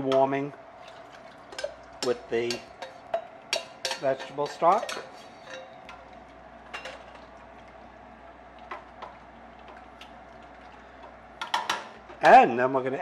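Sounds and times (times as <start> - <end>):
low steady hum: 0.0 - 13.0
utensils tapping steel pot: 0.9 - 6.0.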